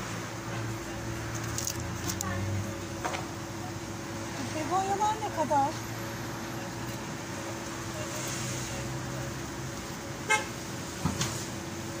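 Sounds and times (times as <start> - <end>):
constant low hum: 0.0 - 8.4
street traffic noise: 0.0 - 12.0.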